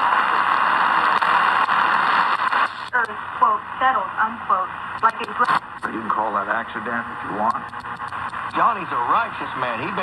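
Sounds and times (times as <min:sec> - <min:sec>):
radio static hiss: 0:00.0 - 0:10.0.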